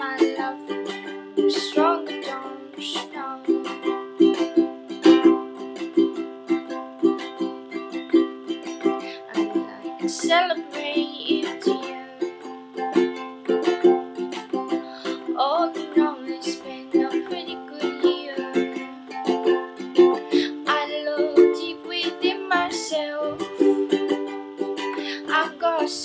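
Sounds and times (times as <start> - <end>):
ukulele strumming chords: 0.0 - 26.0.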